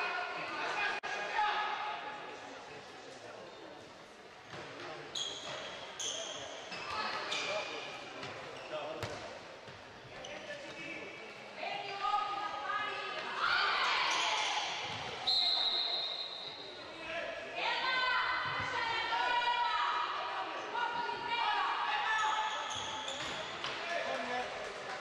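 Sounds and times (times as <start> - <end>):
ball bouncing on wooden court: 9.0 - 9.3.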